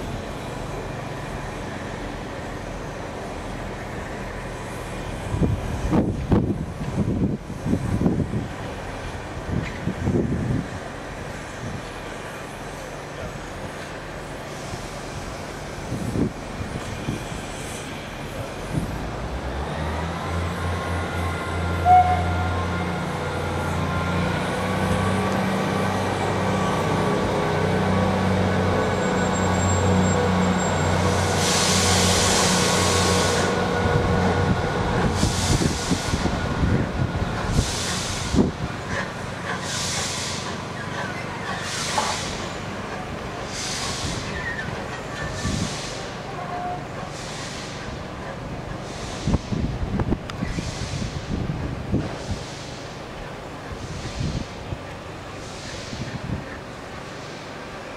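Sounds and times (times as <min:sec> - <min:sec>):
steam locomotive running slowly: 0:00.0 - 0:57.9
hiss of escaping steam: 0:10.4 - 0:19.0, 0:28.8 - 0:57.9.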